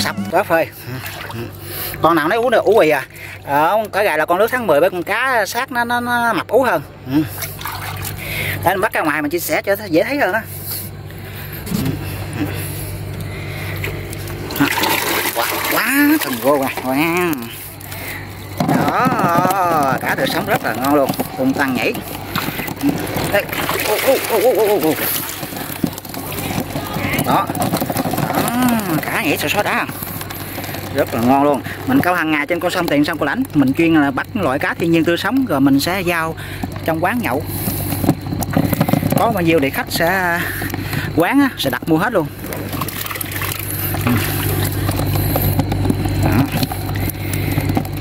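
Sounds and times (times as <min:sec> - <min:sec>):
engine droning: 0:04.6 - 0:48.0
fish splashing in water: 0:07.3 - 0:08.7, 0:13.3 - 0:33.8, 0:42.0 - 0:48.0.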